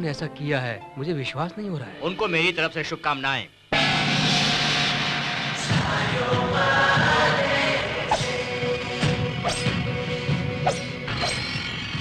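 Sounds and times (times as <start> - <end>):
film score with steady beat: 3.6 - 12.0
sharp whooshes: 8.1 - 8.4.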